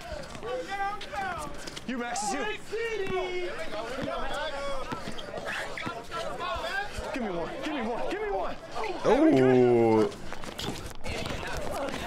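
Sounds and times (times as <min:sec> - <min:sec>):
men calling out: 0:00.0 - 0:10.1
basketball dribbling: 0:10.1 - 0:12.0.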